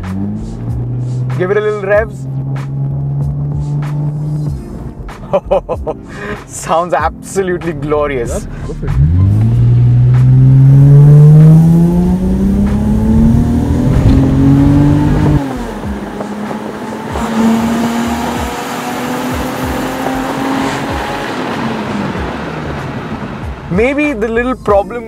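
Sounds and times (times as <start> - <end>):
car engine revving: 0.0 - 5.3, 7.7 - 24.6.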